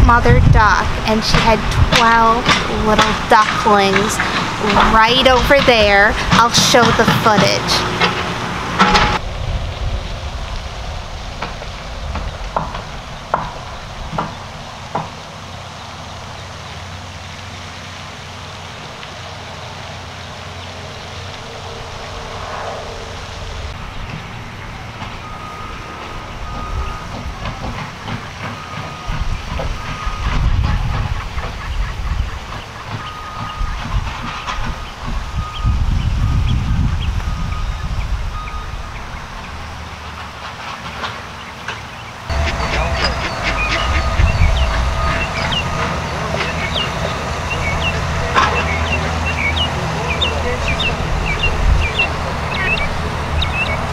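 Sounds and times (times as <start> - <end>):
wind gusts on microphone: 0.0 - 17.3, 18.8 - 40.4, 42.2 - 53.9.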